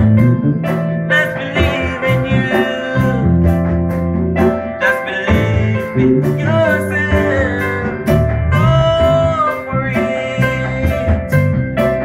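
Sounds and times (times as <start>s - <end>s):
congas and hand drums: 0.0s - 12.0s
drum kit: 0.0s - 12.0s
electric bass: 0.0s - 12.0s
person singing long notes: 1.1s - 3.6s, 4.8s - 11.3s.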